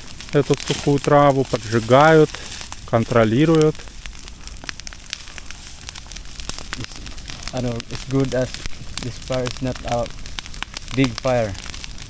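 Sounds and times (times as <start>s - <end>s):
dry grass burning and crackling: 0.0s - 12.0s
soft hiss of fire: 0.0s - 12.0s.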